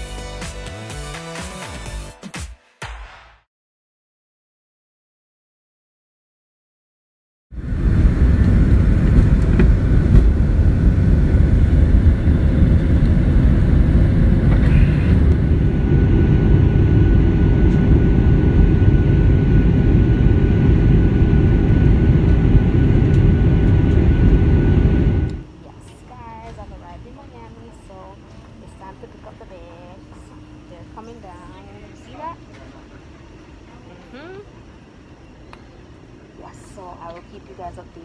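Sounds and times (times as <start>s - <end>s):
airliner engine and airflow roar: 7.6s - 38.0s.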